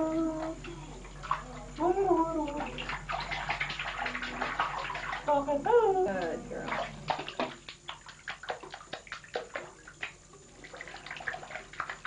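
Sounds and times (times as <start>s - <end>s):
bath water splashing: 0.0s - 12.0s.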